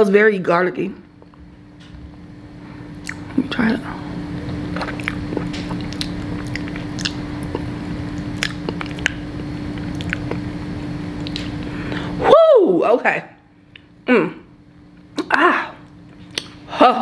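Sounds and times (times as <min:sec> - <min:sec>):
steady low hum: 0:00.0 - 0:17.0
close chewing mouth sounds: 0:04.7 - 0:09.2, 0:09.8 - 0:10.4, 0:11.2 - 0:11.7.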